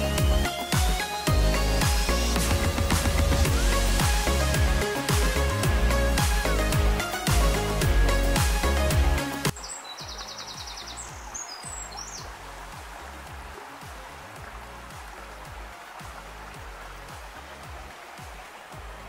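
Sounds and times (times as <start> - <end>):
music with a beat: 0.0 - 9.6, 12.2 - 19.0
small stream running: 0.0 - 19.0.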